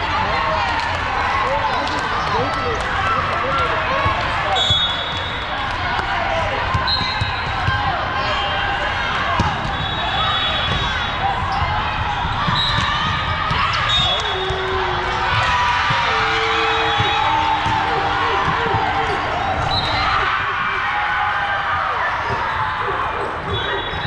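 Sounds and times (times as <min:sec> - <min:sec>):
volleyball hits: 0:04.0 - 0:21.1
distant referee whistles: 0:04.5 - 0:05.4, 0:06.8 - 0:07.6, 0:09.6 - 0:11.0, 0:12.5 - 0:13.0, 0:13.8 - 0:14.7, 0:16.4 - 0:20.2, 0:22.3 - 0:24.0
overlapping voices: 0:14.1 - 0:24.0.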